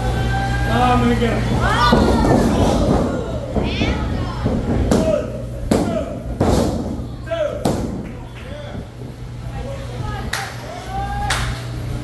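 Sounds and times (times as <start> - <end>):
crowd shouting: 0.0 - 4.5.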